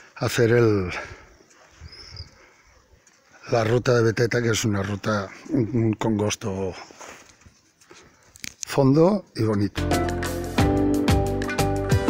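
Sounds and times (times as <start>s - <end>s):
faint outdoor background noise: 0.0s - 9.9s.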